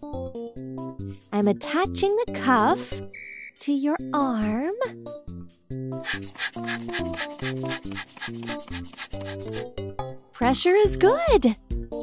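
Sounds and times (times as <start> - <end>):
background music: 0.0 - 12.0
blood pressure bulb squeezed: 6.0 - 9.6.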